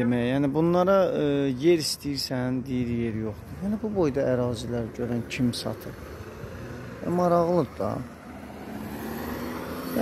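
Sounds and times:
car driving past: 5.8s - 10.0s.

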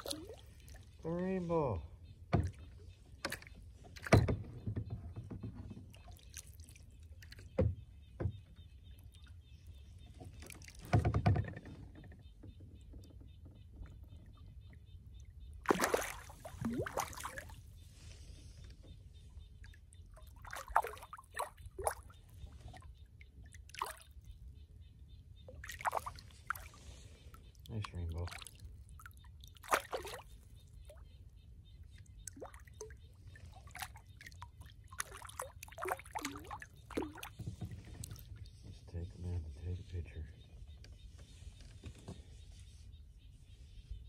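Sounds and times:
fish splashing in water: 0.0s - 0.8s, 15.6s - 17.7s, 20.0s - 22.2s, 23.5s - 24.2s, 25.6s - 26.8s, 27.5s - 30.4s, 32.2s - 33.0s, 33.6s - 38.5s.

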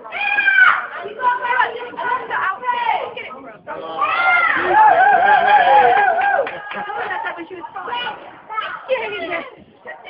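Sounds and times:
children talking and calling out: 0.0s - 5.0s, 6.7s - 10.0s.

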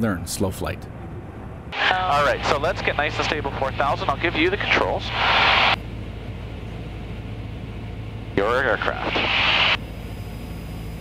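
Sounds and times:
aircraft piston engine droning: 0.5s - 11.0s
radio static burst: 1.8s - 5.8s, 8.4s - 9.8s.

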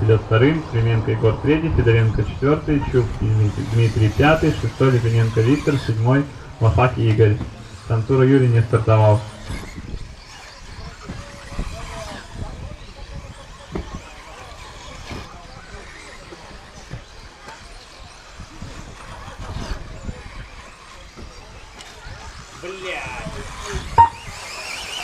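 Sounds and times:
rc car motors whining: 0.0s - 25.0s.

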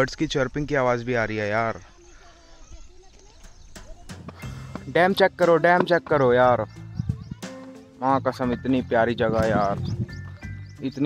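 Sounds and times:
faint chirping: 0.0s - 8.4s.

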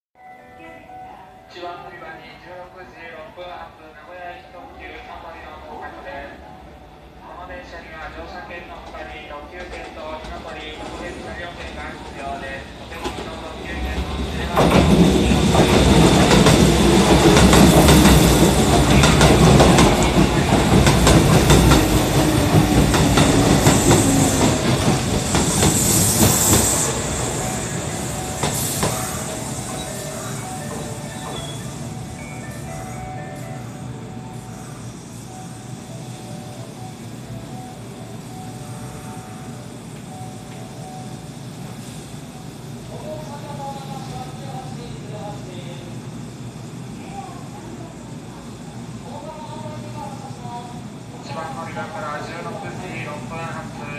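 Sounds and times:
electric train running: 11.5s - 42.9s
high wheel squeal: 25.2s - 32.1s.

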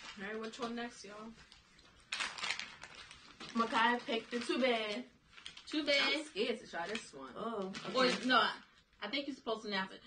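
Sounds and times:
plastic snack bag crinkling: 0.0s - 8.8s.

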